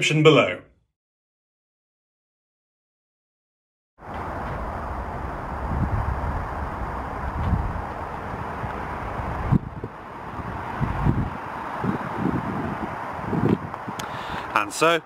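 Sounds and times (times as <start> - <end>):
wind buffeting microphone: 4.0 - 14.6
steady outdoor hiss: 4.0 - 15.0.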